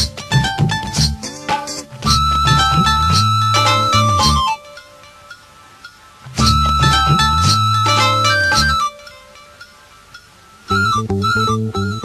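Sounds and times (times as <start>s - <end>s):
held instrumental chords: 0.0s - 12.0s.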